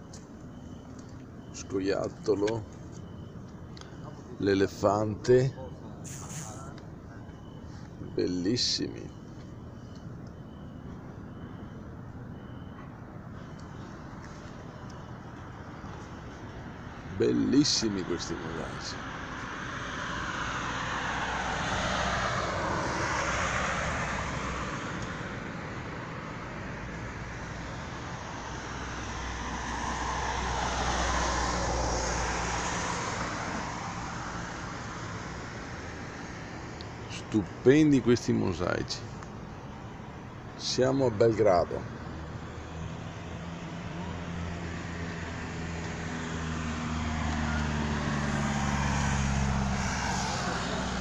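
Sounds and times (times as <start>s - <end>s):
road vehicle passing: 13.4s - 51.0s.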